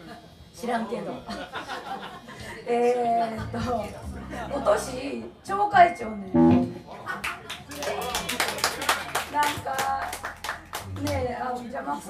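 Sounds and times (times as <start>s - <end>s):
audience clapping: 7.2s - 11.4s.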